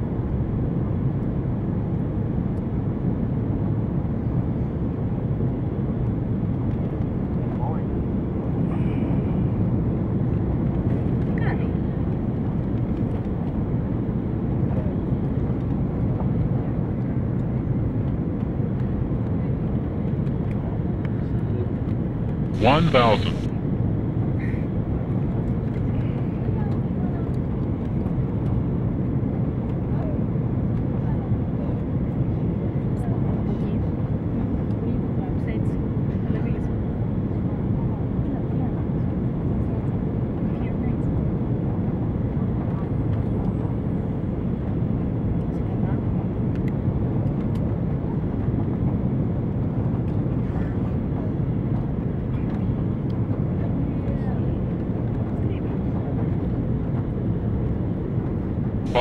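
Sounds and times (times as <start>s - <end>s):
airliner engine drone in cabin: 0.0s - 59.0s.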